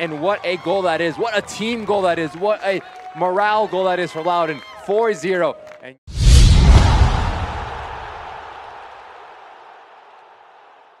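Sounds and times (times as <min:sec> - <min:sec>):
deep boom impact rumble: 0:06.1 - 0:08.3.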